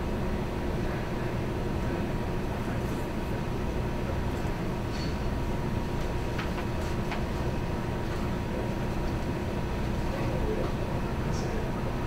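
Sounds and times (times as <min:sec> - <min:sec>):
faint constant hum: 0:00.0 - 0:12.0
low rumble and hiss: 0:00.0 - 0:12.0.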